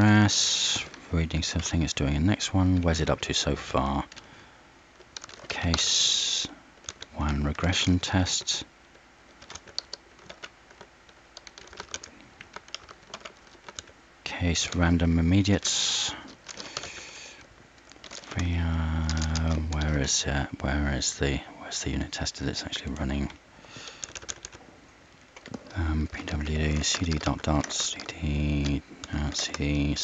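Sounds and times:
man talking: 0.0 - 4.2, 5.5 - 8.7, 14.2 - 16.3, 18.3 - 23.4, 25.7 - 30.0
typing on computer keyboard: 5.0 - 6.0, 6.8 - 7.4, 8.3 - 13.9, 15.6 - 17.1, 17.8 - 20.2, 23.7 - 24.6, 25.4 - 30.0.

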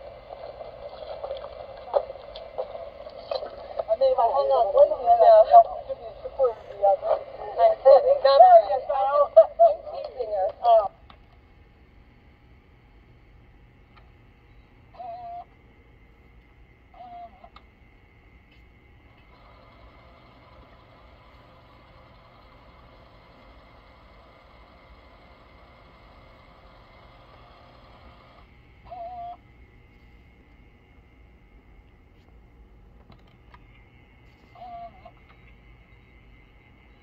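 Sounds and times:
speaker hiss: 0.0 - 10.9.

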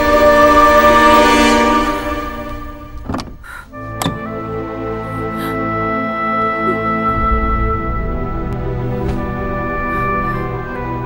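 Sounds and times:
film score sustained chords: 0.0 - 11.0
dull thunk: 3.0 - 4.3.

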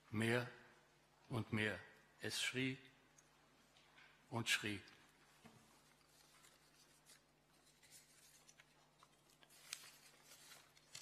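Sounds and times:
paper pages rustling: 5.6 - 11.0.

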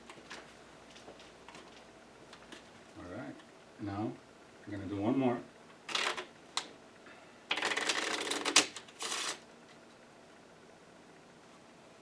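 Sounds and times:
playing cards being shuffled: 7.5 - 9.4.

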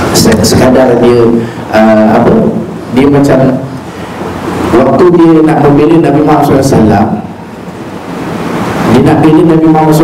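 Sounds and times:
steady rushing hiss: 0.0 - 10.0.

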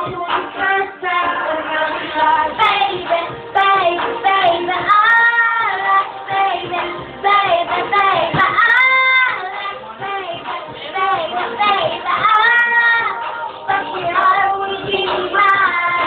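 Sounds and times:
young boy singing: 0.0 - 16.0.

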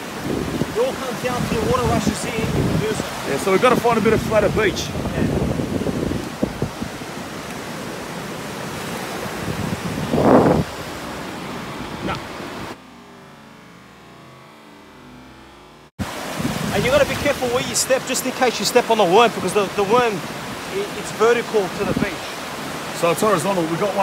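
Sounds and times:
surf washing over sand: 0.0 - 12.8, 16.0 - 24.0.

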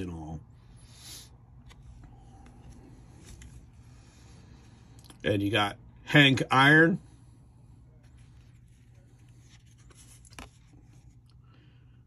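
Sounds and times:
faint low hum: 0.0 - 12.0
cards sliding and rubbing: 1.6 - 4.1, 8.0 - 11.2.

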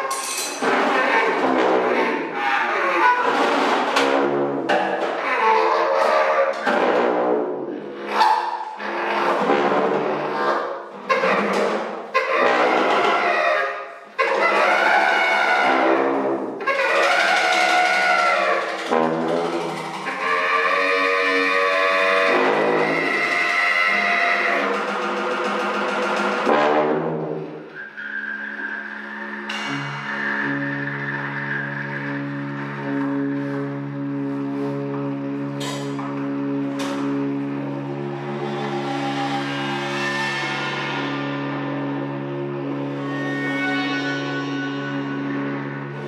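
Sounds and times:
cymbal played with sticks: 0.0 - 0.7, 37.1 - 46.0
horns playing bending lines: 0.0 - 5.2, 6.4 - 46.0
low held notes: 27.2 - 46.0.

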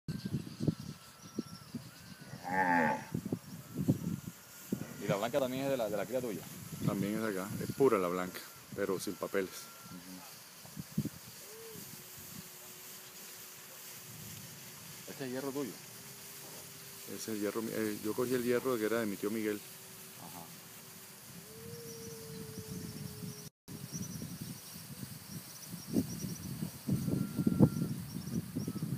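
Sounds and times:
insects chirping: 0.2 - 28.9
cow mooing: 2.3 - 3.2.

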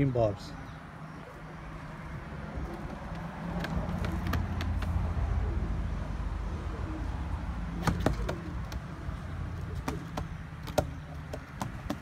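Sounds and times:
motor vehicle engine rumble: 0.7 - 12.0.

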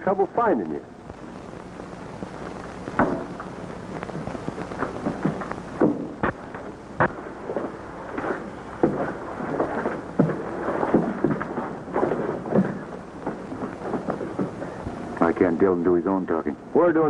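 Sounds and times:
film soundtrack hiss: 0.0 - 17.0.

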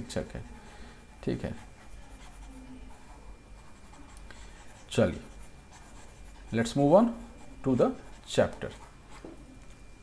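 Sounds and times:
low room hum: 0.0 - 10.0
stylus scratching on tablet: 0.1 - 9.4.

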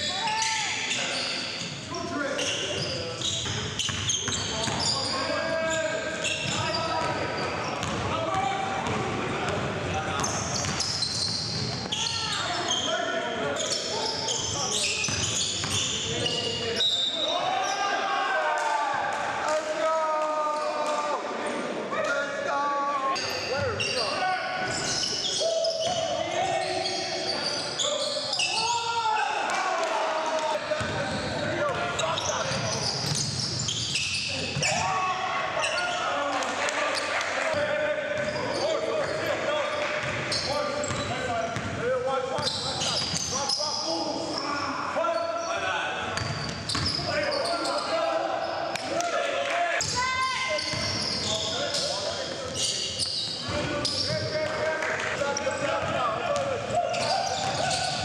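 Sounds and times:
players calling out: 22.0 - 58.0.

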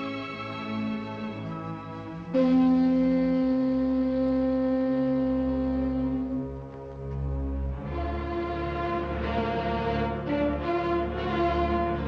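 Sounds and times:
orchestral film music: 0.0 - 12.0
long loud horn note: 2.3 - 6.5.

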